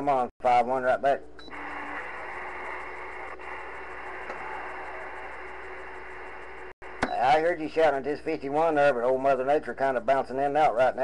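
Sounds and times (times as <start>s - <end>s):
radio static hiss: 1.5s - 8.8s.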